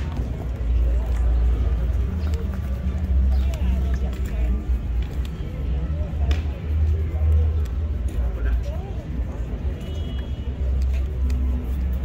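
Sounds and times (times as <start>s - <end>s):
city road traffic rumble: 0.0s - 12.0s
faint voices: 0.0s - 12.0s.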